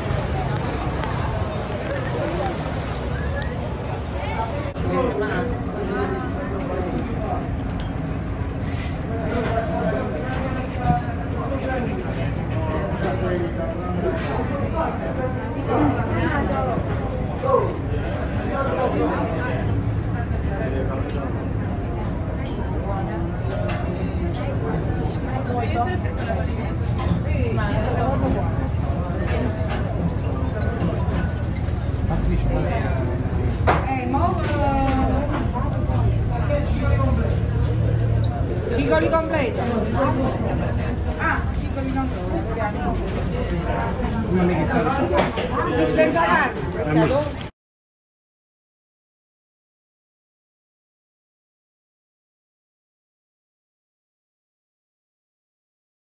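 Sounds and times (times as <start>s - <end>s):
faint voices: 0.0s - 47.5s
people talking: 0.0s - 47.5s.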